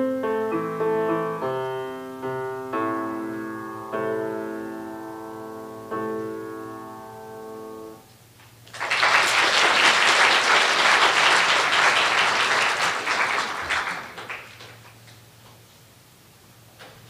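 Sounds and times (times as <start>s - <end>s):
audience applauding: 8.7s - 15.0s.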